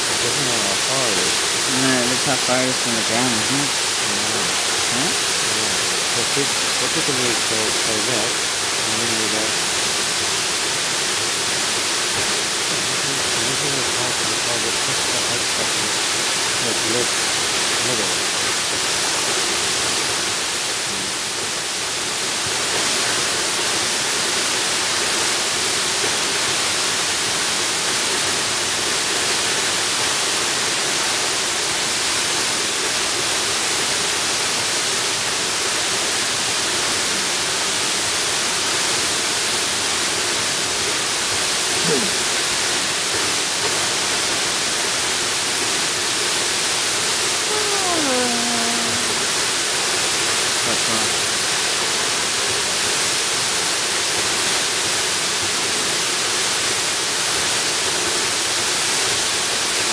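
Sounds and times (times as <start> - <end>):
waterfall hiss: 0.0 - 59.9.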